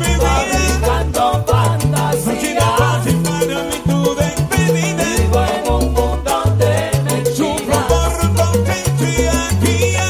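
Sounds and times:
salsa band playing: 0.0s - 10.0s.

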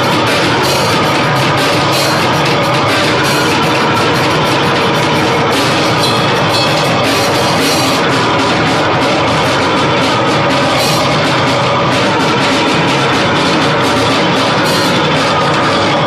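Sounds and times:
cymbals struck: 0.0s - 16.0s
drum kit played hard: 0.0s - 16.0s
loud live band music: 0.0s - 16.0s.

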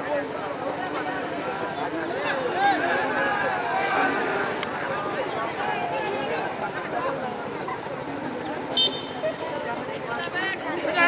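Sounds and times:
spectators chattering: 0.0s - 11.0s
high-pitched whistle blast: 8.8s - 9.2s.

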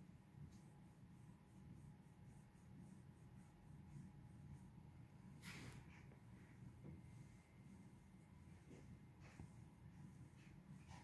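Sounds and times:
low background hum: 0.0s - 11.0s
fingers rubbing through dog fur: 0.4s - 7.1s.

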